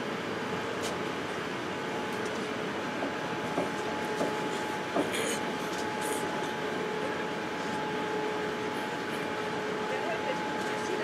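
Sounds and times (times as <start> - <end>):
airplane cabin hum: 0.0 - 11.0.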